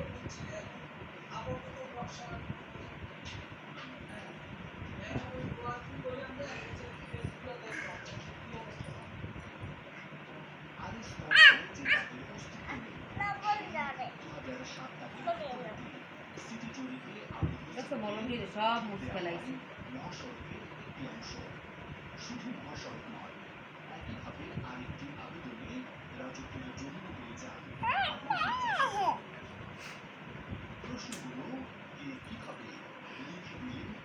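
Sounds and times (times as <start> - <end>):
faint background murmur: 0.0 - 34.0.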